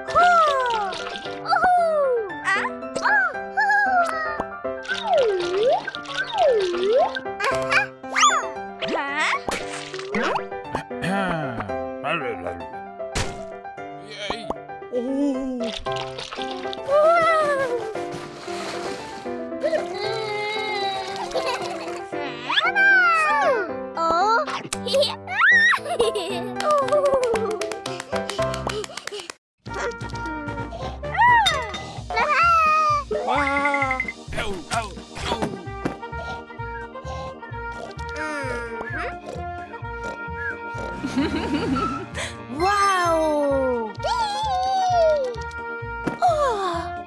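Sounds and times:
cartoon background music: 0.0 - 47.0
cartoon thunk: 13.2 - 13.5.

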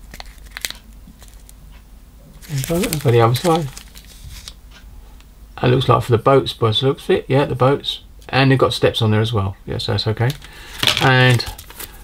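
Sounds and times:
plastic bags crinkling: 0.0 - 1.5, 2.4 - 4.6, 10.3 - 12.0.

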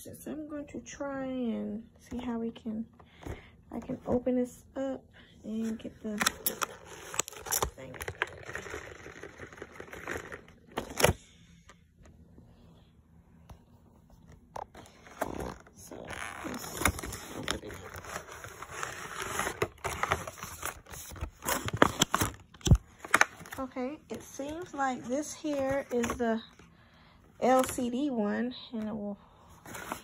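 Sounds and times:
cardboard box rustling: 16.4 - 22.4.

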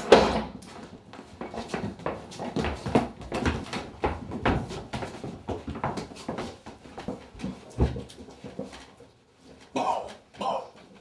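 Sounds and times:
shuffling and knocks: 0.2 - 10.3.

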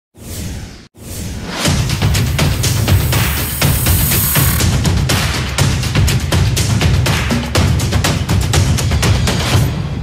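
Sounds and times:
whoosh sound effects: 1.0 - 4.6
electronic intro music: 1.4 - 4.7.

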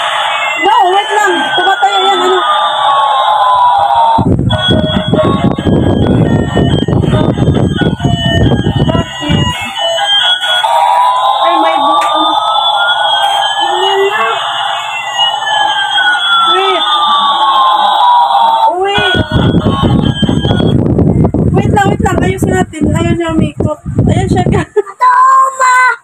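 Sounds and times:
toy airplane electronic siren tones: 0.0 - 20.8.

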